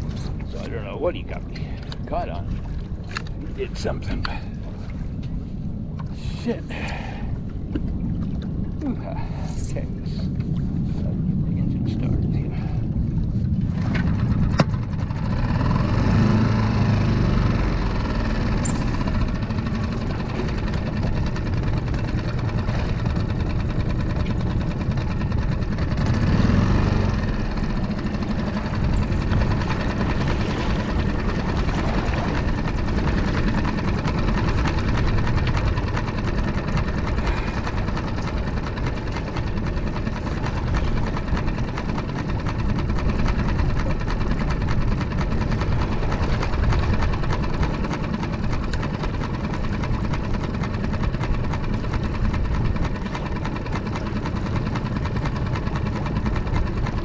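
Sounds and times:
outboard motor running: 0:00.0 - 0:57.0.

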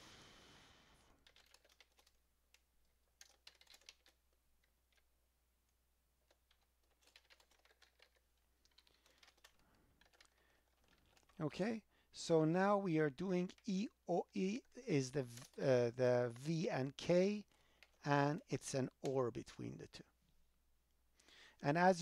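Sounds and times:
faint keyboard keystrokes: 0:01.2 - 0:02.6, 0:03.2 - 0:05.1, 0:06.2 - 0:11.4.

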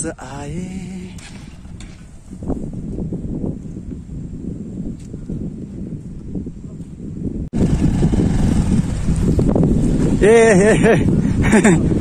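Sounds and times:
motorcycle engine rumbling: 0:00.0 - 0:12.0
wind buffeting microphone: 0:00.0 - 0:12.0.

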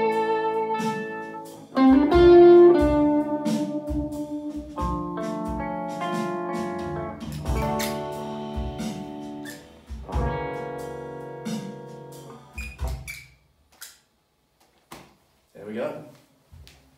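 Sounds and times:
electric guitar blues chords: 0:00.0 - 0:13.1.

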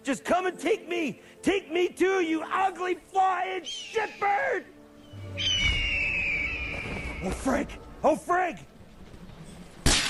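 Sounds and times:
descending cartoon whistle: 0:05.2 - 0:07.3.

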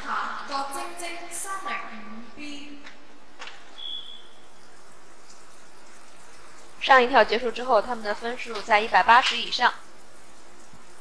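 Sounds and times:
indoor pool hall ambience: 0:00.0 - 0:11.0.

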